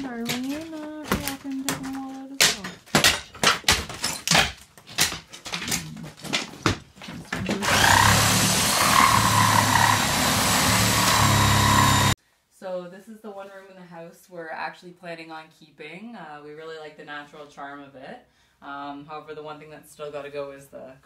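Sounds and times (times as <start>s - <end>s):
wood and plaster cracking off wall: 0.0s - 11.9s
handheld power tool running: 7.6s - 12.2s.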